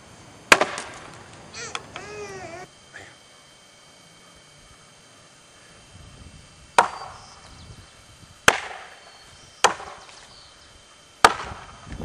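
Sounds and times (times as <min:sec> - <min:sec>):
axe chopping wood: 0:00.5 - 0:01.0, 0:06.8 - 0:07.0, 0:08.5 - 0:09.0, 0:09.6 - 0:10.0, 0:11.2 - 0:11.6.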